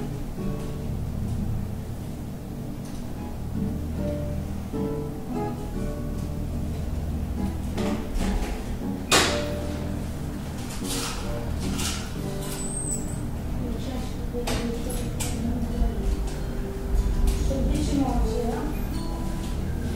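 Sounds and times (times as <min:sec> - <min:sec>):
acoustic guitar playing: 0:00.0 - 0:19.9.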